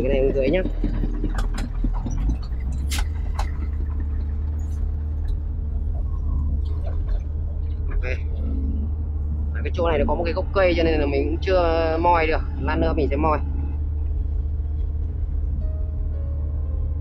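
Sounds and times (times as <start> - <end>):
sharp clacks: 0.0 - 5.4
excavator diesel engine drone: 0.0 - 17.0.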